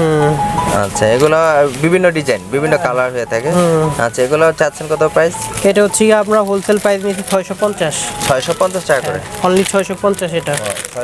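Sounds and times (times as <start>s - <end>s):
people talking: 0.0s - 11.0s
plastic packets crinkling: 5.4s - 11.0s.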